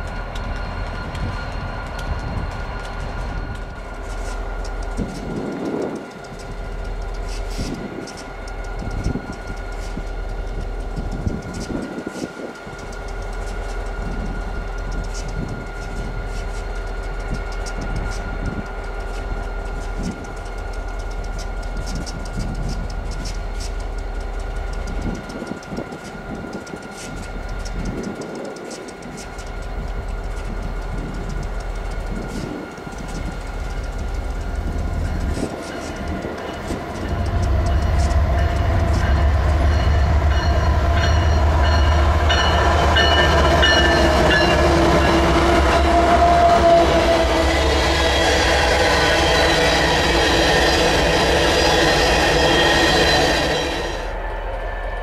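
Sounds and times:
locomotives idling: 0.0 - 54.5
freight train passing: 0.0 - 55.0
wheels on rails: 0.0 - 55.0
high wavering tones: 33.2 - 55.0.

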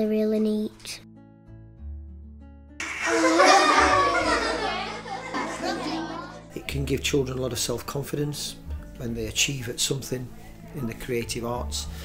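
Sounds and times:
children calling out and laughing: 2.8 - 6.5.

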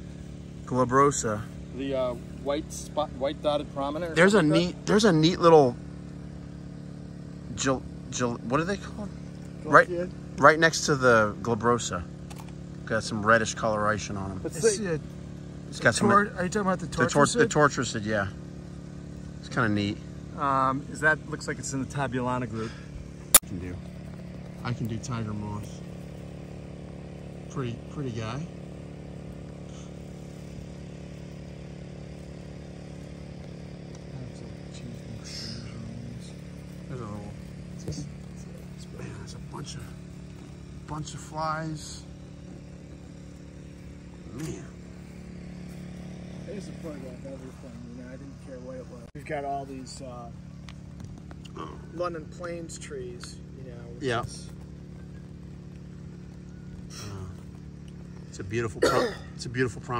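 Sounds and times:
portable generator engine humming: 0.0 - 59.9.

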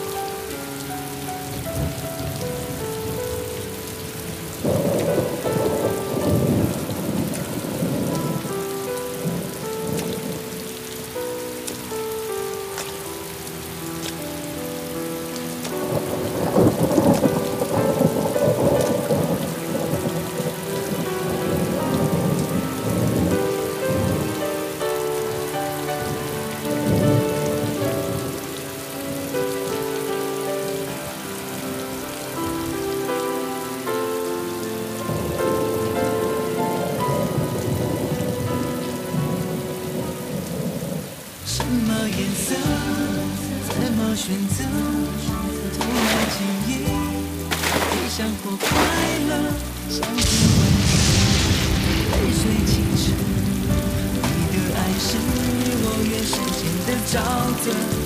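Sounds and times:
heavy rain pouring: 0.0 - 58.0
slow instrumental melody: 0.0 - 58.0
thunder rumbling: 1.2 - 33.0, 34.5 - 58.0.

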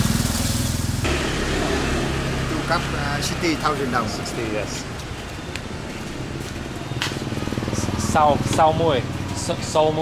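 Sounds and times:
motorbike engine passing: 0.0 - 10.0.

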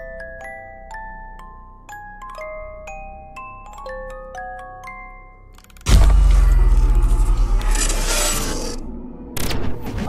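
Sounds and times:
deep boom: 5.9 - 7.7
sharp hit: 5.9 - 10.0.

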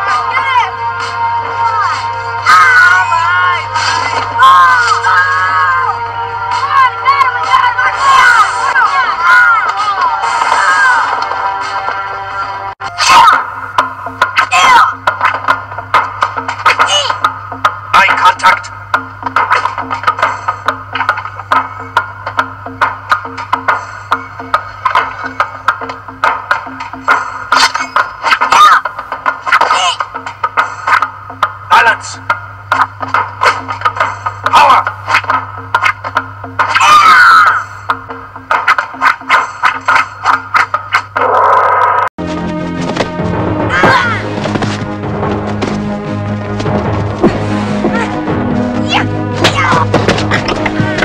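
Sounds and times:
soundtrack music with percussive hits: 0.0 - 41.2, 42.2 - 51.0
boy's fighting shout: 2.4 - 3.7, 36.8 - 37.6.

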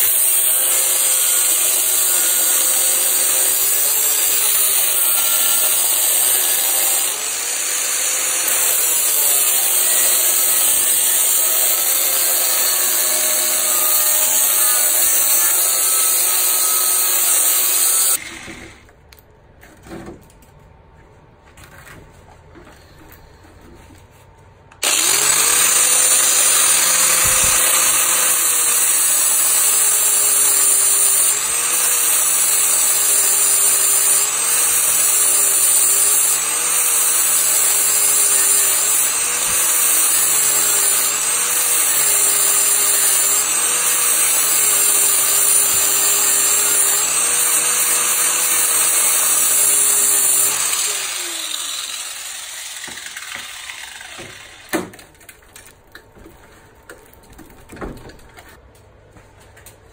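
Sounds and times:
angle grinder grinding metal: 0.0 - 18.8, 24.8 - 55.0.

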